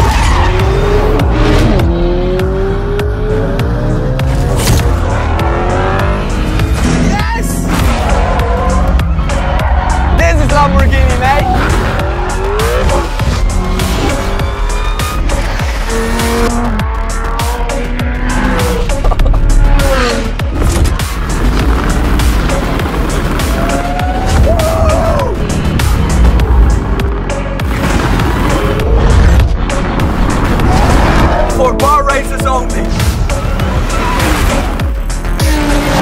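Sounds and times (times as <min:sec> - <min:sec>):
car engine revving: 0:00.0 - 0:24.6, 0:25.2 - 0:36.0
background music: 0:00.0 - 0:36.0.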